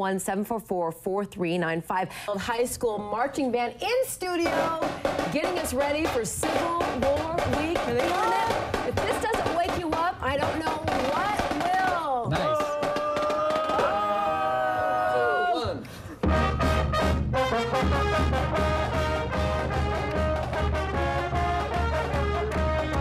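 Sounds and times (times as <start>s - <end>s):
bass drum beat: 4.2s - 14.6s, 15.7s - 23.0s
band playing upbeat fight song: 4.3s - 14.0s, 16.2s - 23.0s
brass holding bending notes: 16.2s - 23.0s.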